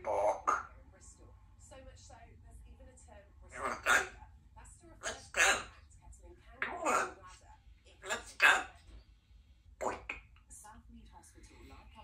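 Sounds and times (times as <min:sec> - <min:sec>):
parrot vocalising: 0:00.0 - 0:00.9, 0:03.5 - 0:04.2, 0:05.0 - 0:05.9, 0:06.6 - 0:07.4, 0:08.0 - 0:08.8, 0:09.8 - 0:10.4.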